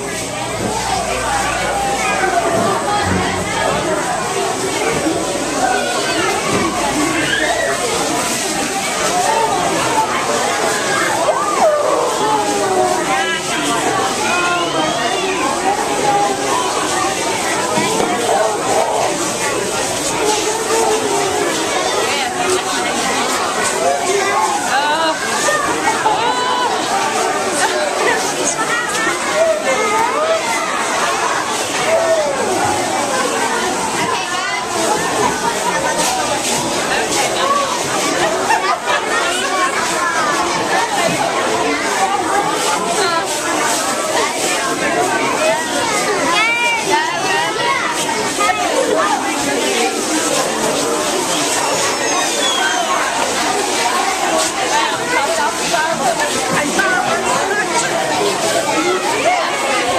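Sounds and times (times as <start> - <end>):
crowd talking and exclaiming: 0.0 - 59.9
overlapping voices: 0.0 - 59.9.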